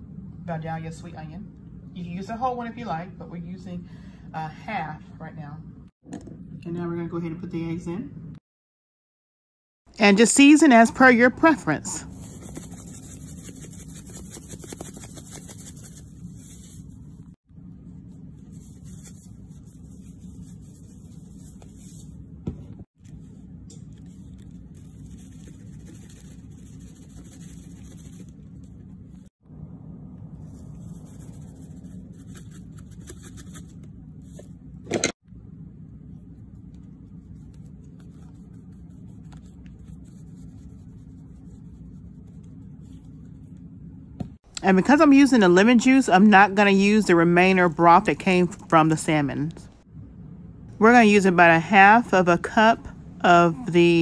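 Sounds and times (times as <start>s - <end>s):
low background hum: 0.0s - 8.4s, 9.9s - 54.0s.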